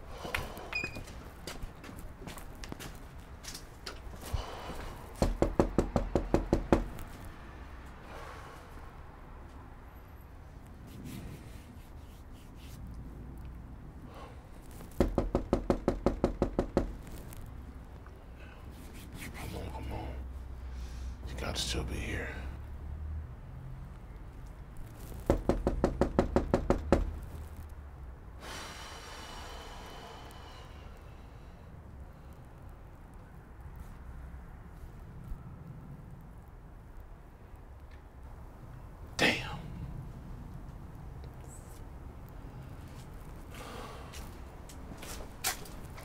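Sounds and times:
rapid knocking on a door: 5.2s - 6.9s, 15.0s - 17.0s, 25.3s - 27.2s.

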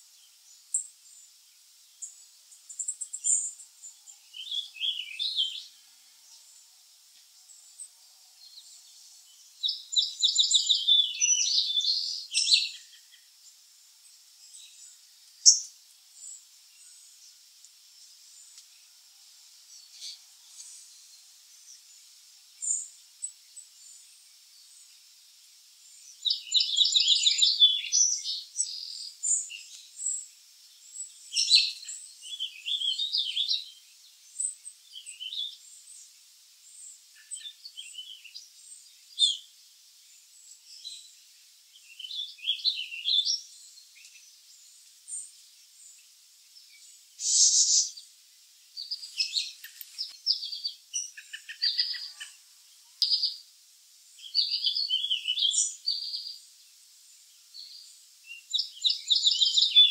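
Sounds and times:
songbirds chirping: 0.0s - 59.9s.

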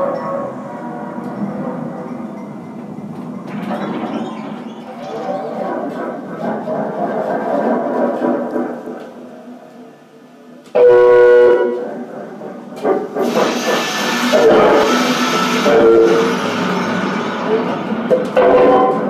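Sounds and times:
loud horn-like chord: 14.3s - 17.7s.

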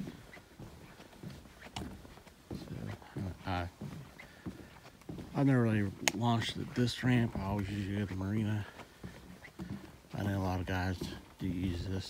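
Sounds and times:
footsteps on boardwalk planks: 0.0s - 12.0s.

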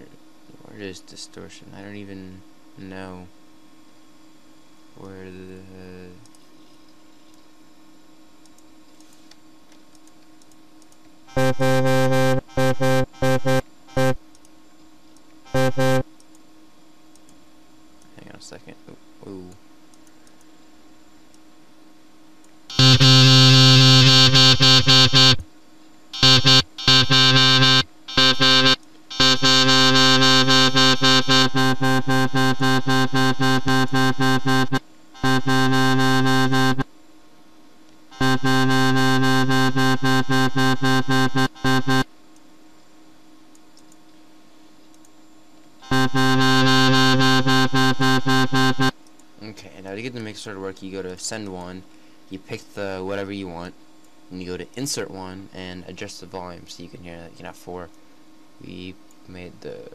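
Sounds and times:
distorted synthesized wobble bass: 11.3s - 14.2s, 15.5s - 16.0s, 22.7s - 25.4s, 26.2s - 36.8s, 38.2s - 42.0s, 45.8s - 48.9s.

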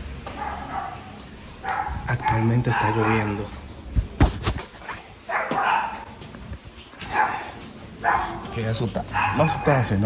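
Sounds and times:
dog barking: 0.3s - 3.5s, 5.2s - 6.2s, 7.0s - 10.0s.

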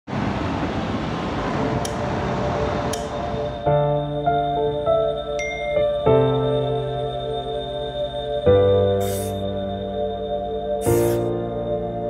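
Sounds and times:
steady rushing noise: 0.1s - 3.8s
soft ambient chiming music: 2.2s - 12.0s.

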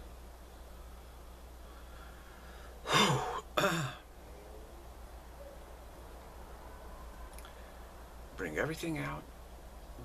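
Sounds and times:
man clearing throat: 2.9s - 4.0s.

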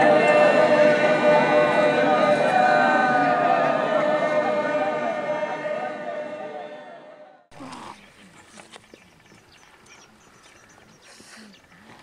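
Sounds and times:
distant low calls: 0.0s - 12.0s.

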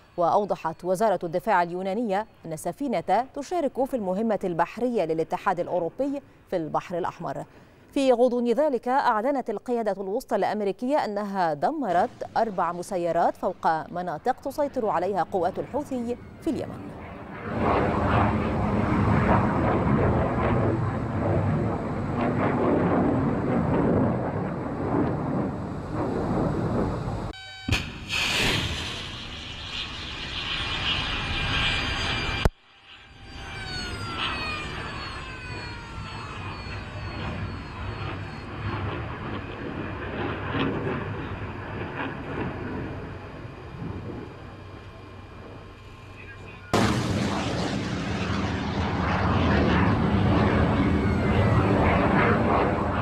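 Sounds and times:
rocket motor roaring: 16.9s - 40.0s, 46.7s - 53.0s
falling whines: 25.6s - 39.5s, 45.6s - 53.0s.

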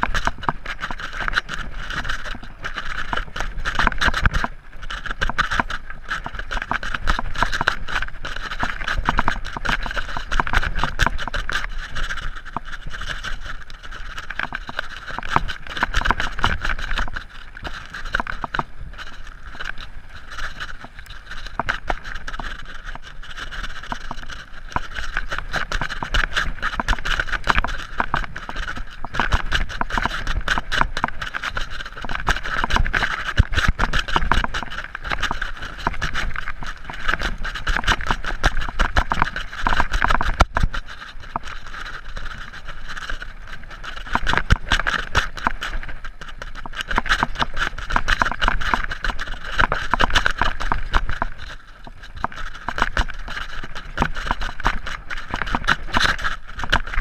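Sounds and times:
mountain bike rattling on dirt trail: 0.0s - 57.0s.

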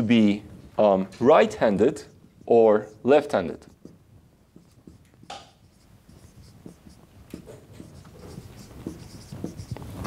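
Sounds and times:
marker writing on whiteboard: 1.4s - 10.0s.

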